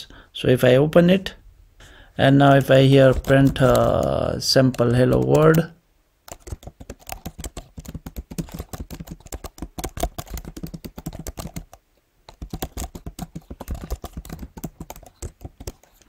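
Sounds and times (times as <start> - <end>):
typing on computer keyboard: 3.1 - 5.7, 6.3 - 16.0.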